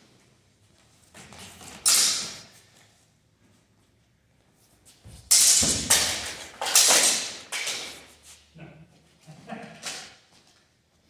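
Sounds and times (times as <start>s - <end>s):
longswords clashing: 1.7s - 2.5s, 5.3s - 8.1s.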